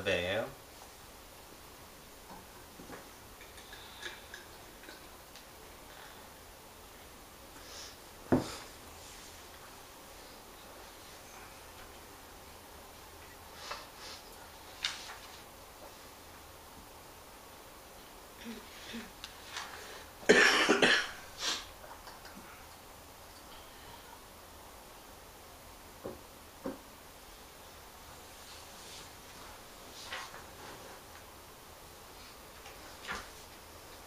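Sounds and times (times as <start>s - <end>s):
person coughing: 20.3s - 21.2s.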